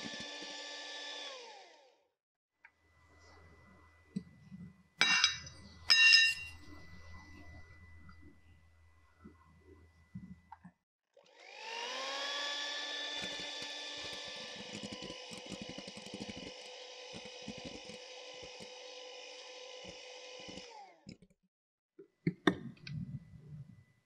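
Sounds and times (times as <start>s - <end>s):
electric hand mixer whining: 0.0s - 2.0s, 11.2s - 21.0s.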